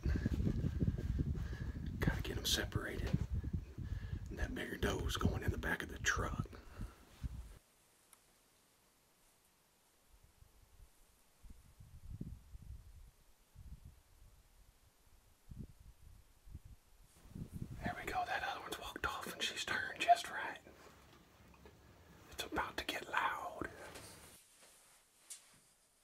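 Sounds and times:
faint low thumps and rumbles: 0.0 - 7.6, 15.5 - 19.2
man whispering: 1.8 - 3.6, 4.2 - 6.9, 17.7 - 20.9, 22.2 - 24.2.

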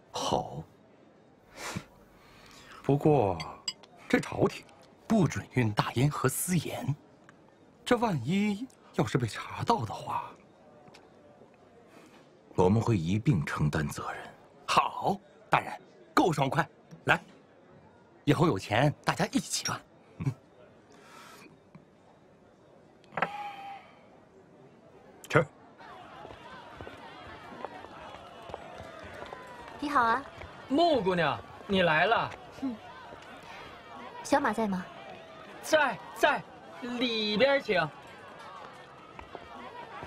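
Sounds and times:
faint distant voices: 0.0 - 40.0.

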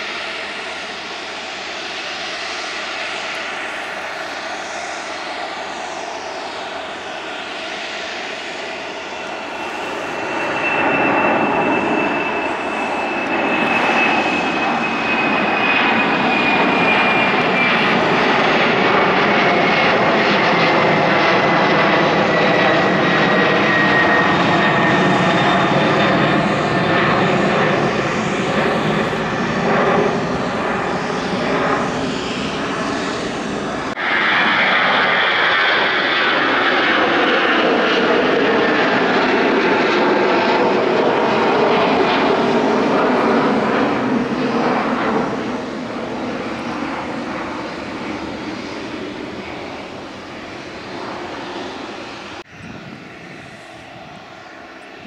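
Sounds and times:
jet engine whine: 0.0 - 55.0.

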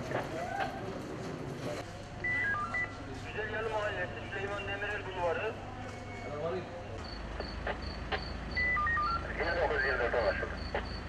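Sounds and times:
cricket chirping: 7.0 - 9.2, 10.4 - 11.0
short electronic beeps: 7.0 - 11.0.

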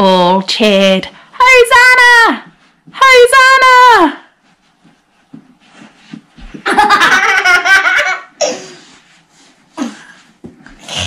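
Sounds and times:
child laughing loudly: 6.7 - 8.7.

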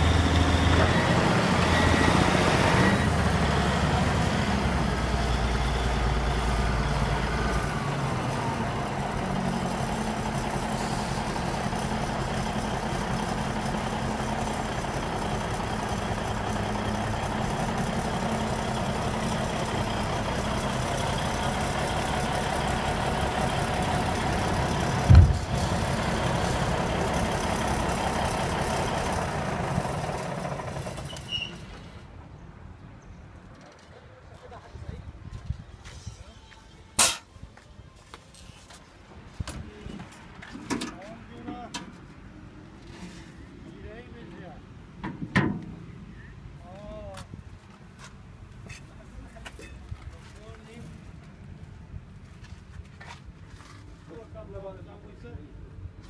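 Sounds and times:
wheel loader diesel engine running: 0.0 - 32.2
sharp thump: 25.0 - 25.5, 37.0 - 37.3.

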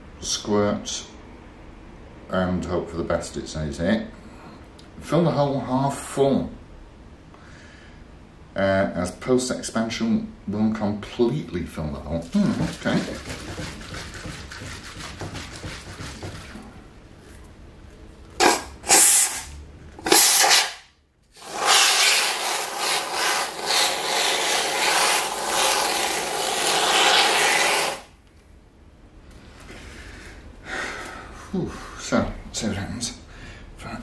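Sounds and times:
aerosol foam can hissing: 18.4 - 20.8, 21.4 - 28.1.

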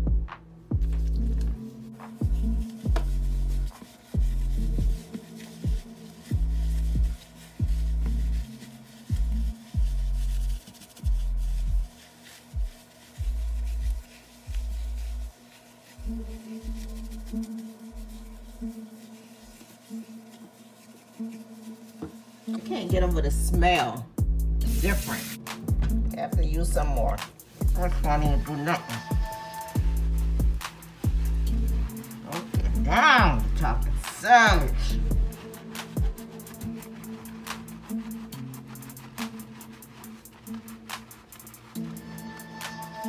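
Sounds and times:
electronic music with pulsing bass: 29.1 - 32.0.

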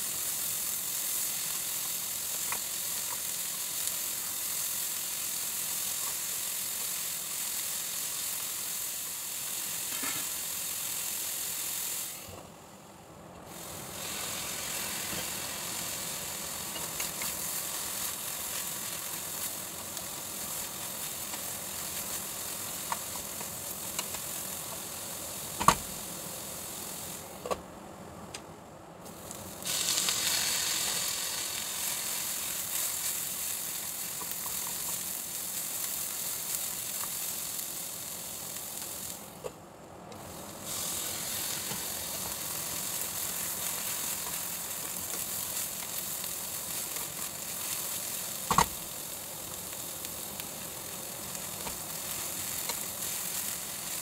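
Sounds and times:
vegetables sizzling in a pan: 0.0 - 27.6, 29.0 - 54.0.

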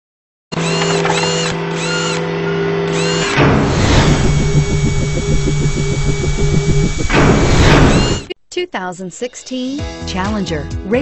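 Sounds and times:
machine-like whir: 0.5 - 8.3
fast pulsing buzz: 2.9 - 8.3
rising-and-falling chirps: 2.9 - 8.3
whoosh: 3.4 - 8.3.

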